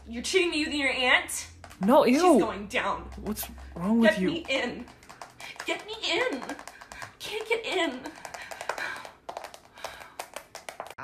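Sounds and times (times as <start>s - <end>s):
fingernails tapping on touchscreen: 3.0s - 11.0s.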